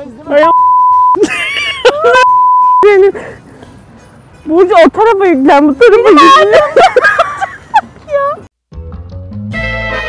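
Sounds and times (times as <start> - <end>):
censor beep: 0.4 - 1.2, 2.2 - 2.9.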